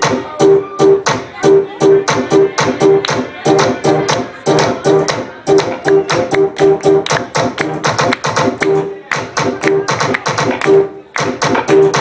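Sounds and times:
stuttering electronic dance music: 0.0s - 12.0s.

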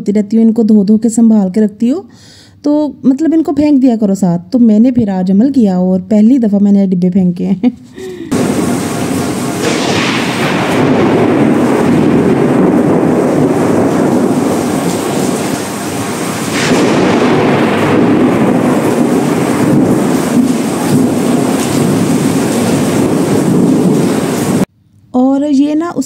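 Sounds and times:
rolling thunder: 8.3s - 24.7s
sharp thunder crack: 8.3s - 24.7s.

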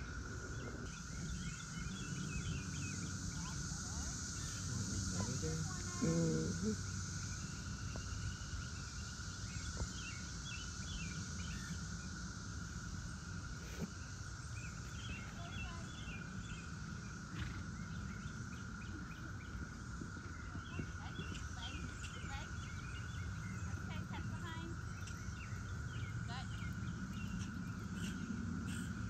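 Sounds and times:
constant low rumble: 0.0s - 29.0s
steady high hum: 0.0s - 29.0s
birds chirping and singing: 0.3s - 11.9s, 13.8s - 29.0s.

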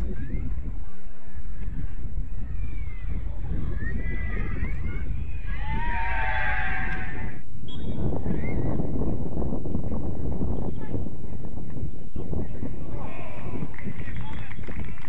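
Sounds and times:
wind buffeting microphone: 0.0s - 15.0s
distant people shouting: 2.4s - 7.4s
loud shout: 2.4s - 7.4s.

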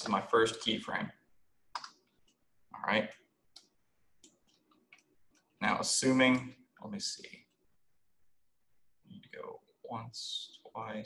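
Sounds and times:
mouse and keyboard clicks: 1.7s - 2.4s.

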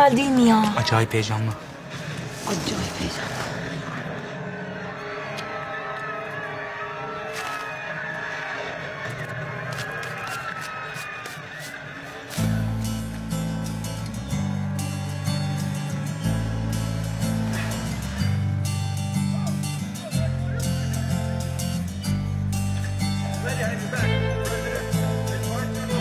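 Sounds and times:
strong bass line: 12.4s - 26.0s.

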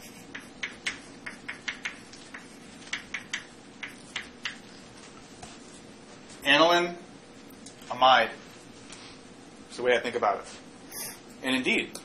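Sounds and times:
chalk tapping and scraping blackboard: 0.0s - 4.7s.

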